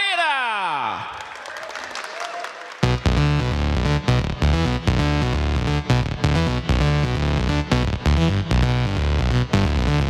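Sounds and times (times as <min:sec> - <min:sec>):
audience applause and cheering: 0:00.8 - 0:03.3
loud music with heavy bass beats: 0:02.8 - 0:10.0.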